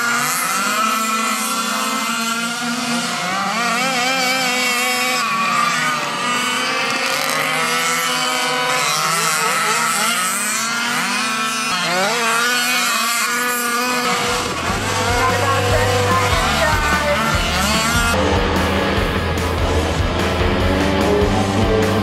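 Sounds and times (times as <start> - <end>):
small two-stroke engines buzzing: 0.0 - 22.0.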